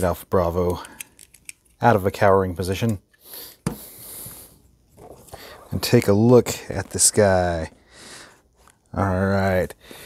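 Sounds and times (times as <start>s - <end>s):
soft breathy hissing: 3.1s - 5.8s, 7.8s - 8.6s, 9.8s - 10.0s.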